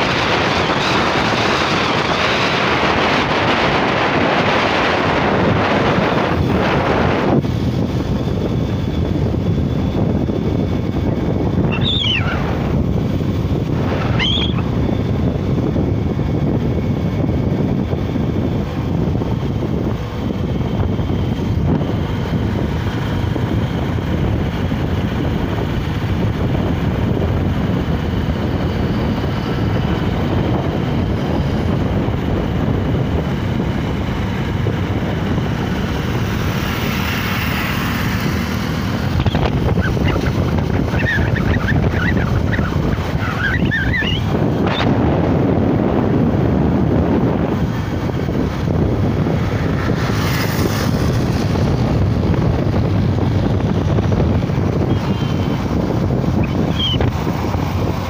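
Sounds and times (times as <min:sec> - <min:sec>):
road noise: 0:00.0 - 0:58.0
wind buffeting microphone: 0:00.0 - 0:58.0.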